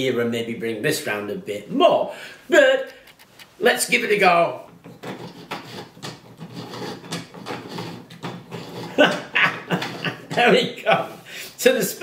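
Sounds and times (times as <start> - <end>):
man laughing: 9.0 - 11.2.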